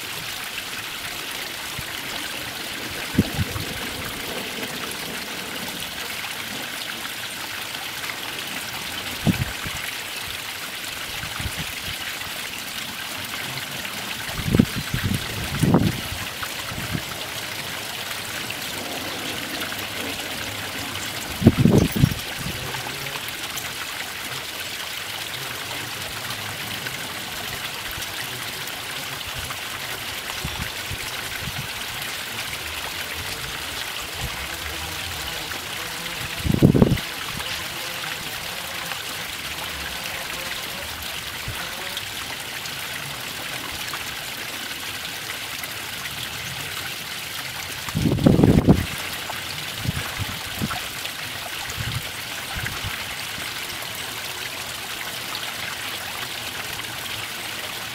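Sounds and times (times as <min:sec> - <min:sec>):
stream trickling over stones: 0:00.0 - 0:57.9.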